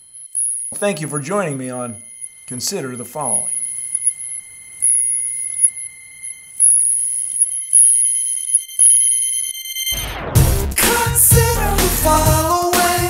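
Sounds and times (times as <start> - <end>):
plasma globe electronic whine: 0.0 - 11.8
brighter higher whine: 0.0 - 12.2.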